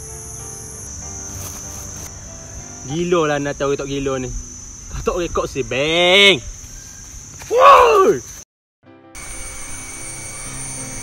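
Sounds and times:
insects droning: 0.0s - 8.4s, 9.2s - 11.0s.

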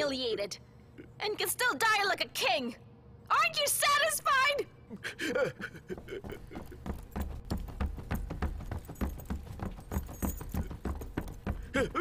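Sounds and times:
footsteps thudding: 6.0s - 12.0s
armour plates jangling: 6.8s - 11.7s.

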